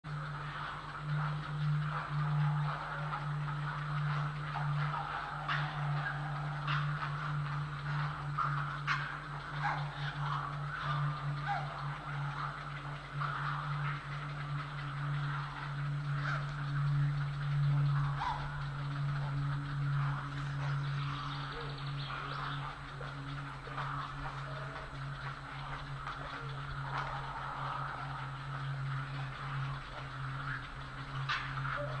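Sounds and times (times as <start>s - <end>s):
faint outdoor background noise: 0.0s - 32.0s
low electrical hum: 0.0s - 32.0s.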